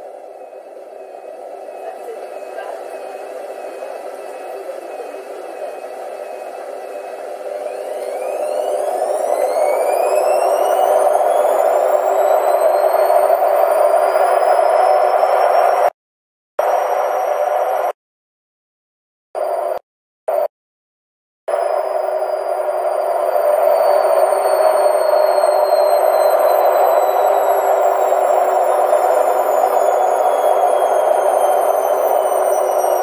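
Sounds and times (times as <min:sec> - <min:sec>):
motor whine rising in pitch: 0:00.0 - 0:15.9, 0:16.6 - 0:18.0, 0:19.4 - 0:20.5, 0:21.5 - 0:33.0.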